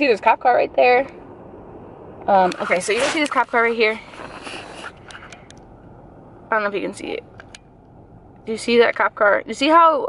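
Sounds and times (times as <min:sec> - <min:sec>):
car cabin rumble in traffic: 0:00.0 - 0:10.0.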